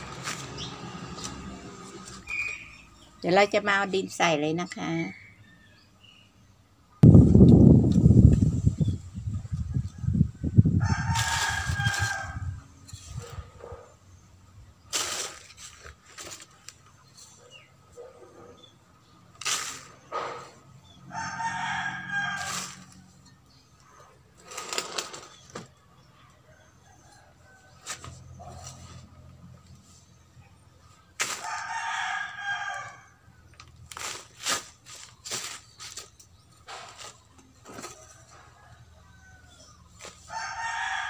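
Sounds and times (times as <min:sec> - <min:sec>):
rustles and knocks of soil: 0:00.0 - 0:02.7, 0:07.0 - 0:10.1, 0:10.8 - 0:13.8, 0:14.8 - 0:17.7, 0:19.2 - 0:20.7, 0:22.0 - 0:25.8, 0:27.4 - 0:30.2, 0:30.8 - 0:41.0
rooster crowing: 0:10.0 - 0:12.6, 0:21.1 - 0:22.9, 0:31.4 - 0:33.2, 0:40.2 - 0:41.0.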